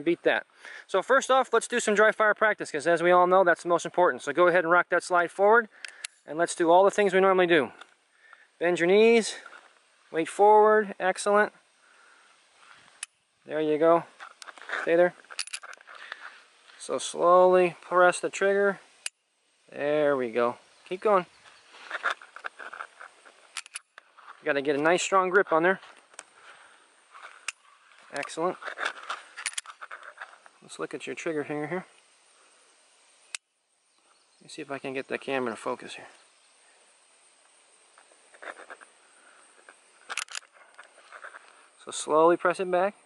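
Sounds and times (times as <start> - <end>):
faint handling noise: 12.4 - 19.2, 20.4 - 30.8, 37.9 - 41.9
faint chirps: 31.8 - 41.9.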